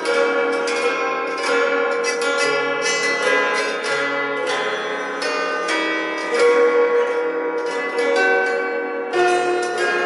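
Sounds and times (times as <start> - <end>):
plucked zither melody: 0.0 - 10.0
strummed zither chords: 0.0 - 10.0.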